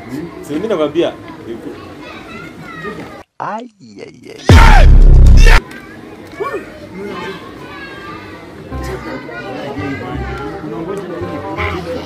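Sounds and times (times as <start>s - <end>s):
children chattering: 0.0s - 3.2s, 5.6s - 12.0s
vocal exclamation: 4.3s - 5.6s.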